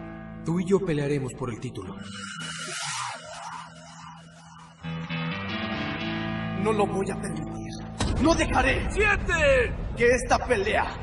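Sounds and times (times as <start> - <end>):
background music with low held notes: 0.0 - 3.5, 4.8 - 11.0.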